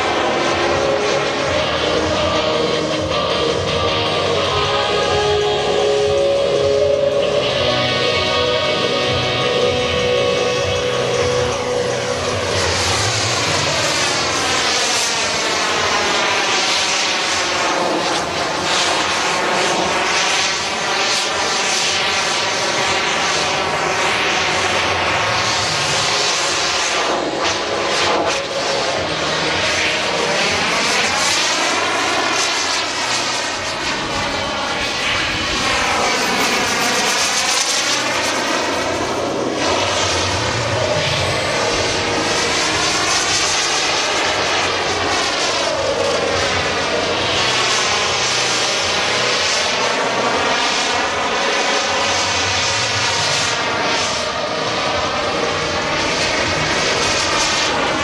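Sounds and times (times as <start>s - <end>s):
model jet turbine engine: 0.0s - 58.0s.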